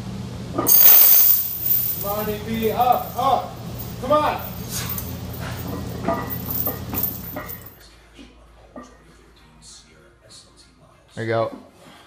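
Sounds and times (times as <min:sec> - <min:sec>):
chains clinking and jangling: 0:00.7 - 0:07.7.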